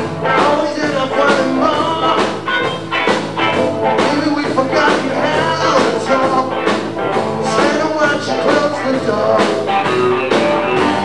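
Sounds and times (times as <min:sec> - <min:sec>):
live rock band: 0:00.0 - 0:11.0.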